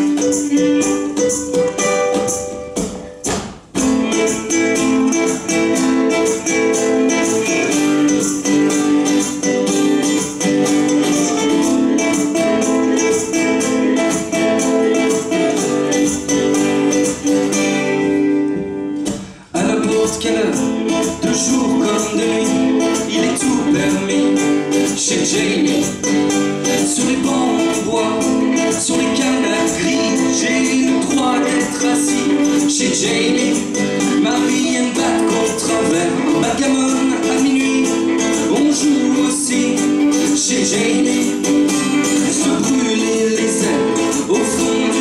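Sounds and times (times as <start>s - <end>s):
acoustic guitar: 0.0s - 45.0s
ukulele: 0.0s - 45.0s
kick drum beat: 1.2s - 4.2s.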